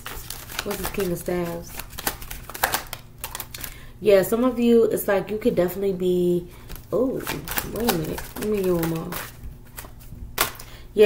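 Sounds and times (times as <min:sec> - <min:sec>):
cards being shuffled: 0:00.0 - 0:03.8, 0:06.6 - 0:10.7.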